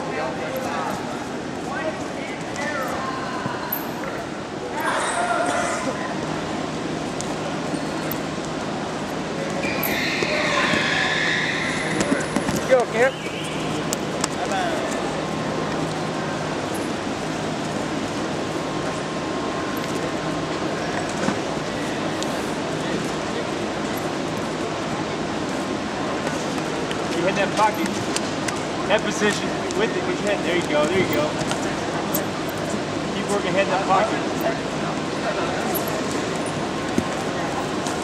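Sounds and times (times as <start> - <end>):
indistinct voices echoing: 0.0 - 7.6, 8.2 - 17.5
steady low hum: 0.0 - 38.0.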